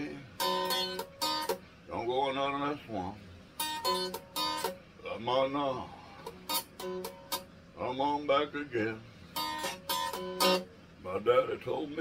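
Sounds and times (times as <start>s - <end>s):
man singing: 0.0s - 0.5s, 1.9s - 3.2s, 5.0s - 6.0s, 7.8s - 9.1s
ukulele strummed chords: 9.4s - 10.7s.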